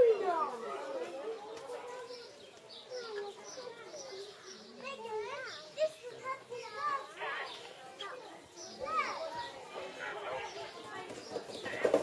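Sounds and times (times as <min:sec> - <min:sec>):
children's voices: 0:00.0 - 0:11.8
people chattering: 0:00.0 - 0:12.0.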